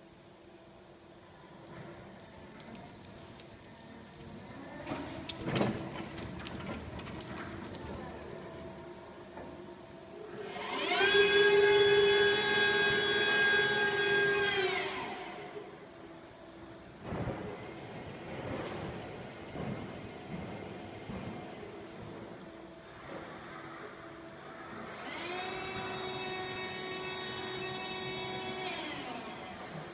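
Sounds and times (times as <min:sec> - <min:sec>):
electric truck humming: 0:08.2 - 0:29.9
hydraulic pump motor whining: 0:10.3 - 0:15.8, 0:23.8 - 0:29.9.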